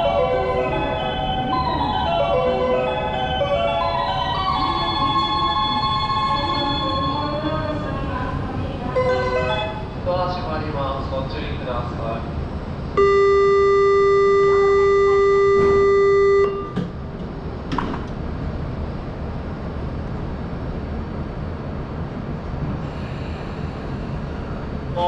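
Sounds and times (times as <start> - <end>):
low rumble of train and station: 0.0 - 25.0
electronic warning buzzer: 13.0 - 16.8.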